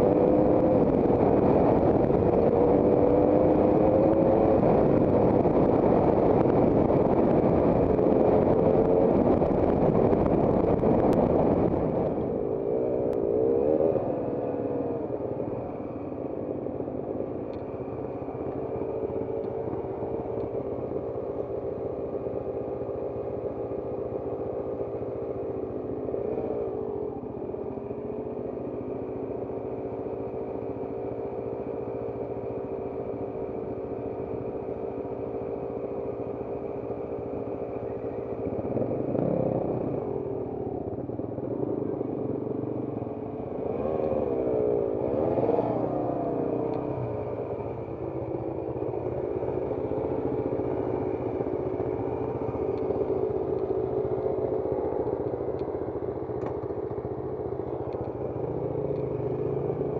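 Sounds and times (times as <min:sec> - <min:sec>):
motorcycle engines idling: 0:00.0 - 0:59.9
motorcycle throttle blips: 0:17.1 - 0:59.9.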